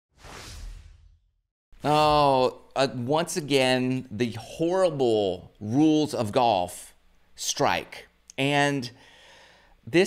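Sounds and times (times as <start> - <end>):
whoosh: 0.1 - 1.4
man speaking: 1.8 - 9.0.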